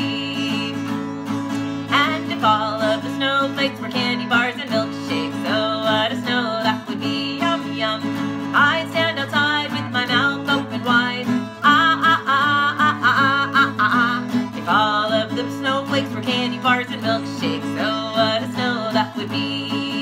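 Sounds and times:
strummed acoustic guitar: 0.0 - 20.0
woman singing: 0.0 - 20.0.

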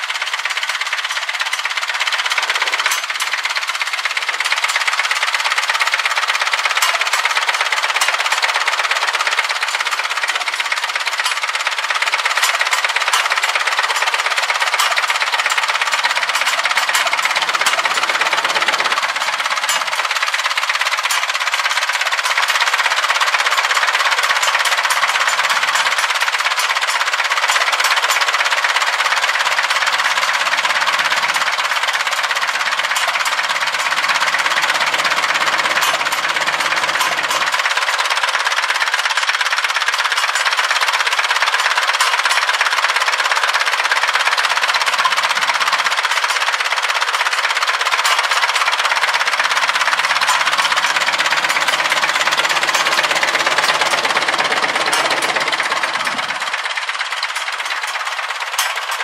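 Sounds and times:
tractor engine idling: 0.0 - 59.0.

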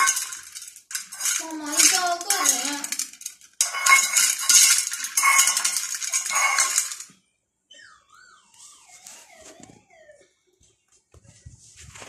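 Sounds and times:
metal bowl scraping and rattling: 0.0 - 7.2.

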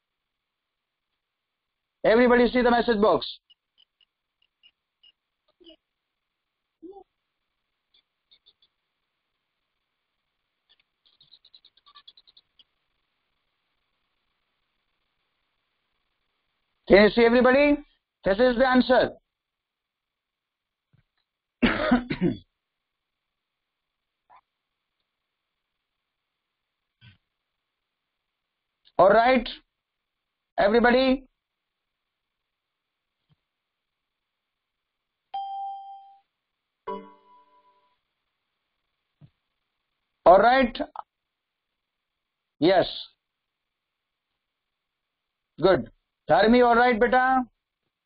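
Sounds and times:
notification chime ding: 35.4 - 36.2, 36.9 - 37.8.

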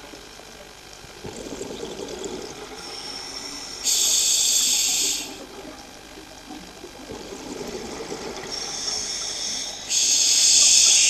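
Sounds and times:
hiss: 2.9 - 5.4, 8.5 - 11.0.

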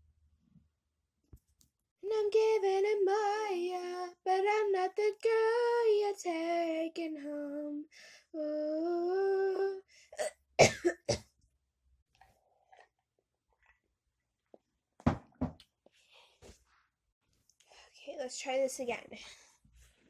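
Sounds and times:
young voice singing held notes: 2.0 - 9.8
sharp coughs: 10.2 - 11.3.

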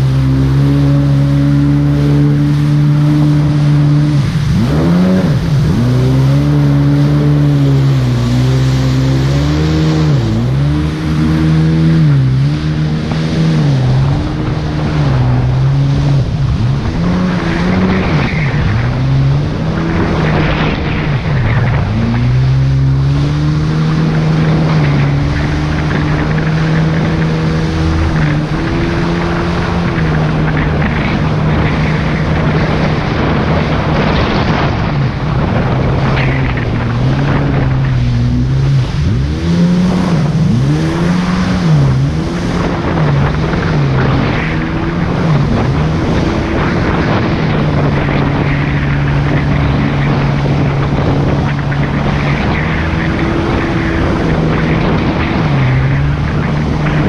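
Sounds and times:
jet ski engine running hard: 0.0 - 57.0
water spray rushing: 0.0 - 57.0.

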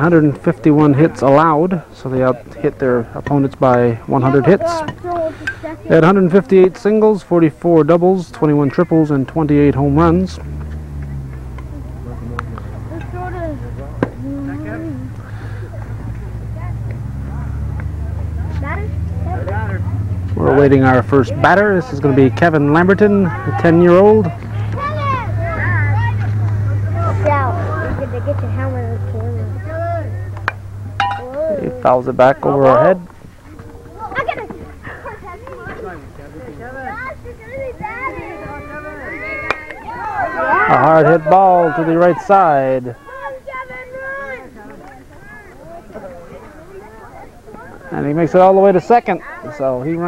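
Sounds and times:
sports commentary: 0.0 - 10.6, 11.2 - 50.0
children calling out: 4.4 - 5.9, 12.8 - 17.4, 24.4 - 30.2, 31.1 - 31.9, 33.5 - 36.1, 36.7 - 47.9.

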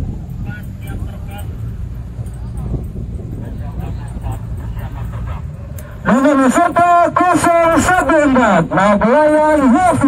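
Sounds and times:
faint distant crowd voices: 0.0 - 10.0
wind buffeting microphone: 0.0 - 10.0.

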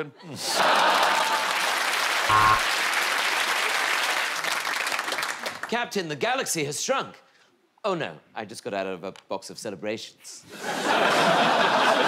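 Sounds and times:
audience laughing and applauding: 0.4 - 5.6, 10.6 - 12.0
loud pitched sound: 2.3 - 2.7.

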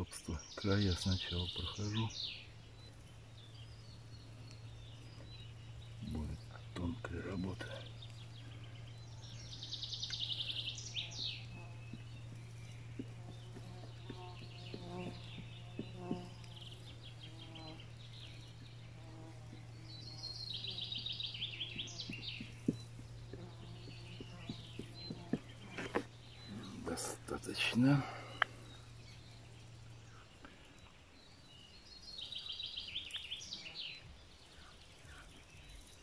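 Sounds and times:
bird singing trilled phrase: 0.0 - 30.4
steady low hum: 0.0 - 36.0.

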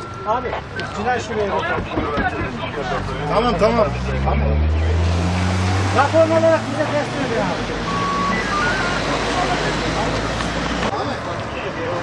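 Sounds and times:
group of people talking: 0.0 - 12.0.

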